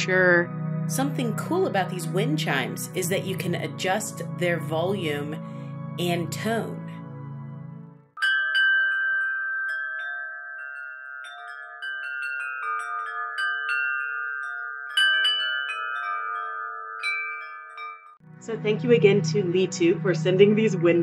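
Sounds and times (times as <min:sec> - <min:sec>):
wind chimes ringing: 0:01.0 - 0:05.4, 0:08.2 - 0:18.2.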